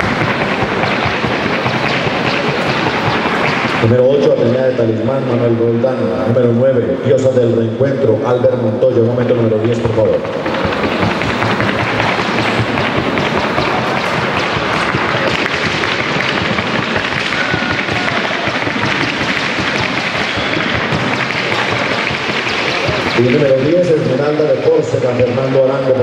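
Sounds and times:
horse hoofbeats on hard track: 0.0s - 5.4s, 8.7s - 26.0s.

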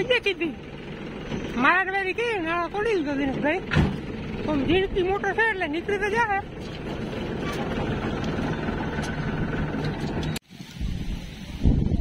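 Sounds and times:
people talking: 0.0s - 0.6s, 1.6s - 3.7s, 4.4s - 6.5s
low engine hum: 0.0s - 12.0s.

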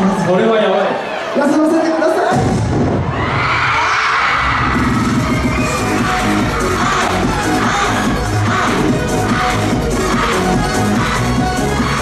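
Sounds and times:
crowd cheering and screaming: 0.0s - 12.0s
pop music with heavy bass beat: 4.5s - 12.0s.

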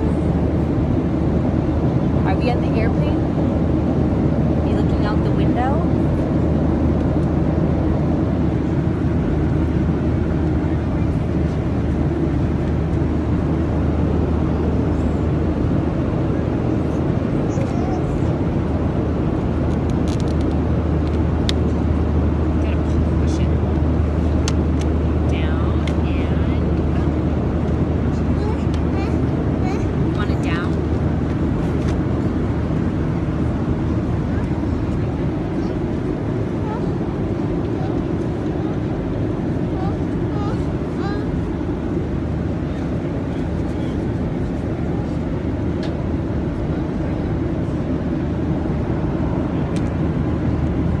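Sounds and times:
airliner cabin drone: 0.0s - 51.0s.

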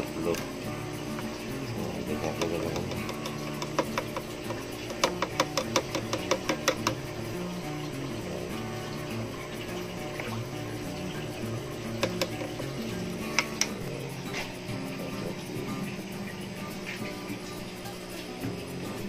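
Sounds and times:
background music: 0.0s - 19.0s
bottle cap tapping on glass: 2.2s - 7.2s, 11.8s - 14.5s.

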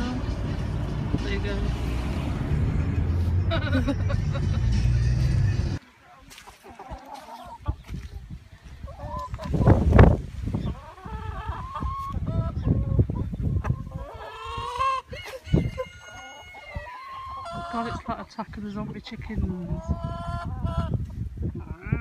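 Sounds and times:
chickens clucking: 5.7s - 22.0s
rooster crowing: 15.2s - 17.5s.

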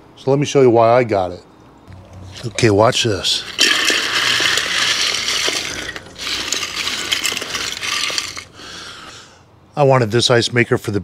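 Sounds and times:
ice cubes clattering: 2.1s - 8.6s.

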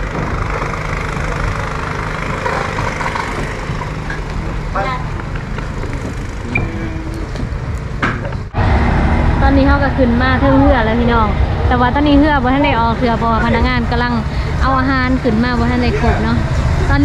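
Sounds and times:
low engine rumble: 0.0s - 17.0s
people's voices: 0.9s - 8.4s, 9.4s - 17.0s.

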